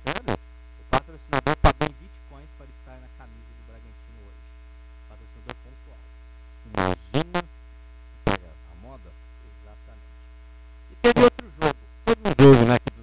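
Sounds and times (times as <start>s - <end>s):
faint voices: 0.0s - 4.4s, 5.1s - 6.0s, 8.3s - 10.0s
electrical mains hum: 0.0s - 13.0s.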